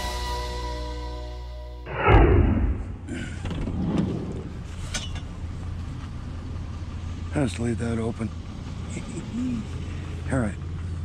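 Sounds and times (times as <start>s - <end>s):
sliding door thud: 1.9s - 4.4s
low steady rumble: 1.9s - 11.0s.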